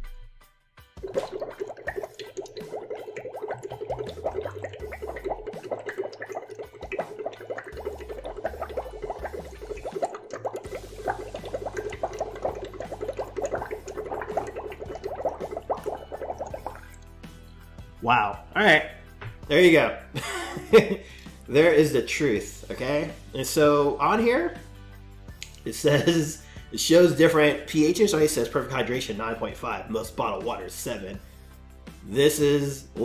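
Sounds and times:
bubbling water through straw: 1.0s - 17.1s.

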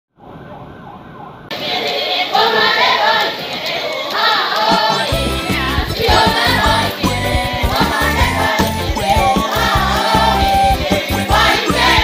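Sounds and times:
muffled vehicle siren wailing: 0.1s - 1.5s
song playing: 4.7s - 12.0s.

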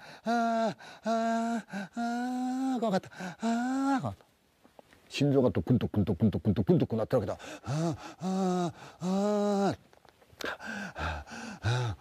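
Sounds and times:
man panting: 0.0s - 4.0s, 7.4s - 9.7s, 10.4s - 12.0s.

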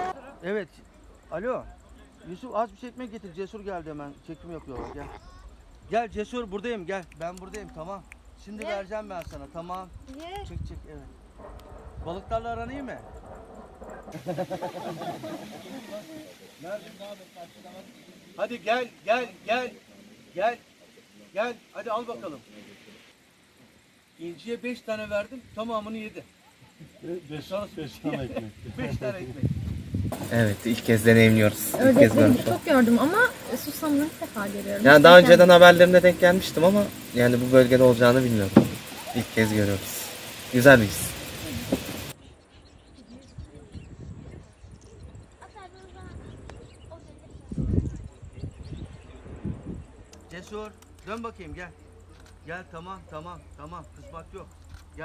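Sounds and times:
man laughing: 0.0s - 0.4s, 14.2s - 16.1s, 26.9s - 29.4s
outdoor background noise: 0.0s - 55.0s.

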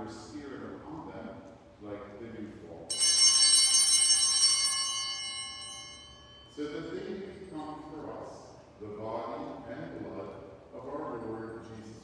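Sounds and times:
bells ringing: 2.9s - 8.0s.

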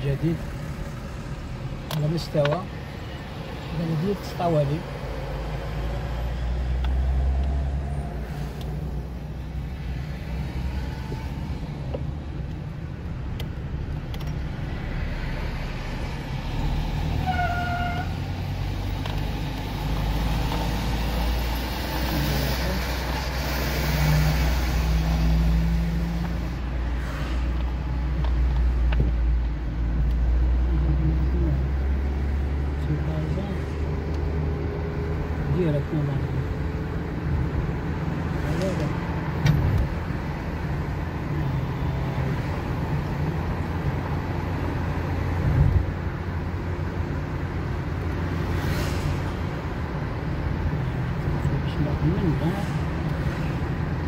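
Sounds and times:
car engine and tyres rumbling: 0.0s - 54.0s.

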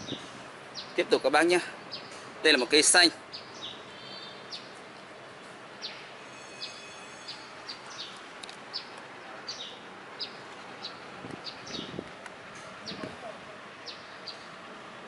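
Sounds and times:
small birds chirping: 0.0s - 12.0s, 12.6s - 14.6s
outdoor background noise: 0.0s - 15.0s.

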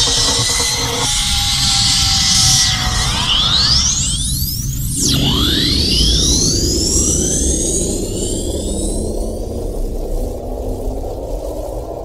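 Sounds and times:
low rumbling synth bed: 0.0s - 12.0s
synthesizer sweeps gliding up: 0.0s - 12.0s.

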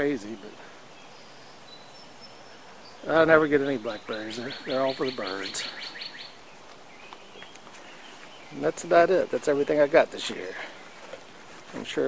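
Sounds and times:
faint bird chirps: 0.0s - 8.9s.

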